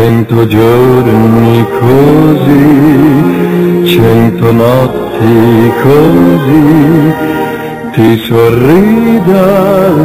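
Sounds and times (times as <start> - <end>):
person singing with vibrato: 0.0 - 10.0
steady musical accompaniment: 0.0 - 10.0.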